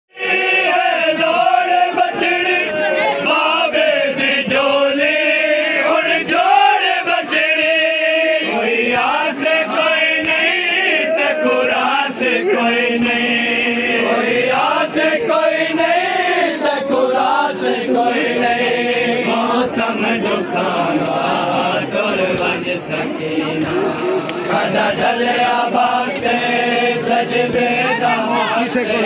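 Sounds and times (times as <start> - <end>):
men chanting a lament: 0.1 - 29.0.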